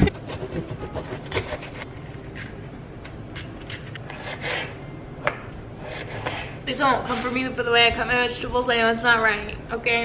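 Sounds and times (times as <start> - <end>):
knife scraping cutting board: 0.0 - 4.8, 5.8 - 7.4
knife slicing pepper: 0.0 - 4.8, 5.8 - 6.6.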